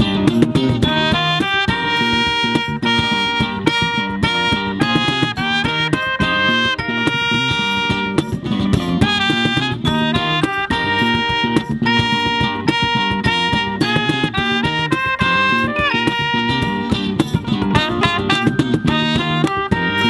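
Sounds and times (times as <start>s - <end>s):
bass guitar: 0.0s - 20.0s
hand percussion: 0.0s - 20.0s
strummed acoustic guitar: 0.0s - 20.0s
trumpet melody: 0.0s - 20.0s.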